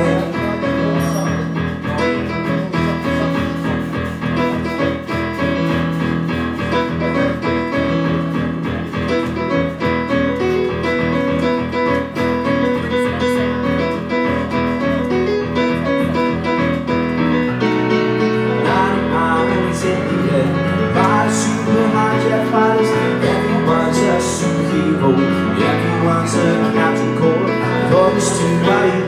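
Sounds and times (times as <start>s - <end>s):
person singing: 0.0s - 5.3s, 6.9s - 29.0s
piano chords: 0.0s - 29.0s.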